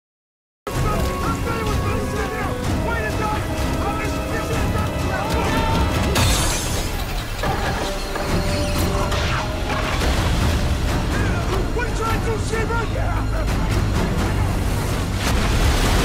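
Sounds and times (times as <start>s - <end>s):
film music: 0.7s - 16.0s
heavy surf: 0.7s - 16.0s.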